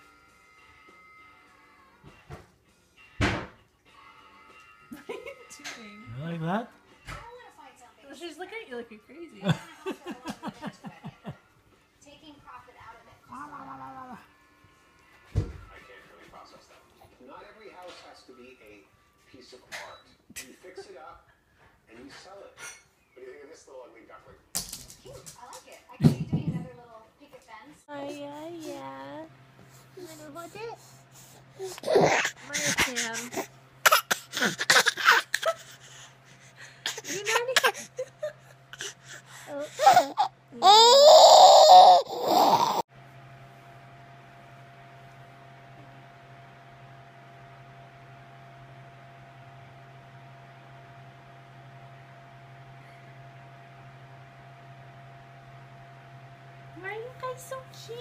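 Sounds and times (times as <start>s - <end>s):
small dog whining: 39.5s - 42.8s
baby high-pitched calls: 39.7s - 42.8s.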